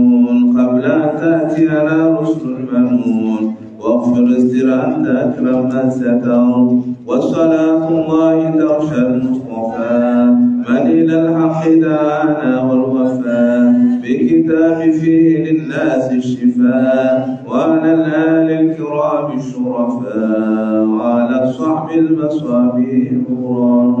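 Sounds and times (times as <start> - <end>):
man chanting: 0.0 - 24.0.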